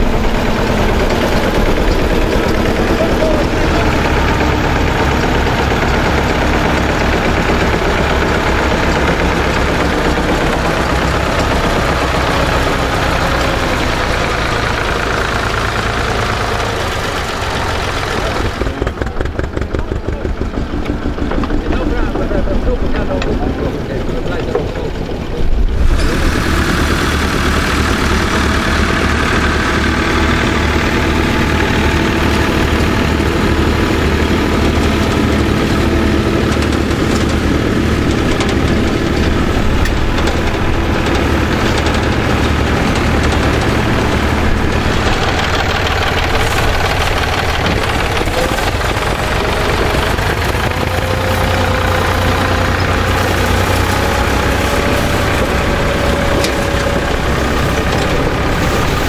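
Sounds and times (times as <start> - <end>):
tractor engines under load: 0.0 - 59.0.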